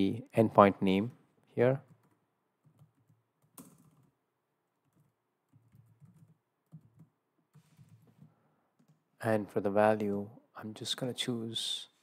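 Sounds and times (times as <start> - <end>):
typing on computer keyboard: 1.9 - 9.1.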